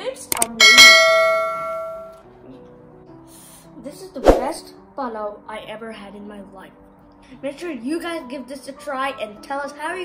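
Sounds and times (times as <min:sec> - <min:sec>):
bell-like chime: 0:00.6 - 0:02.2.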